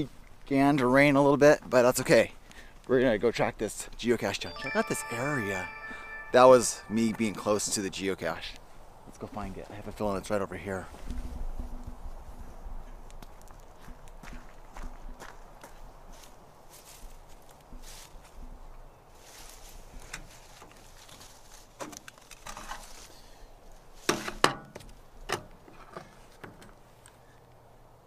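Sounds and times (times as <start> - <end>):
footsteps on wet ground: 12.8 - 18.3
rustling through grass: 16.1 - 18.4, 19.1 - 24.1.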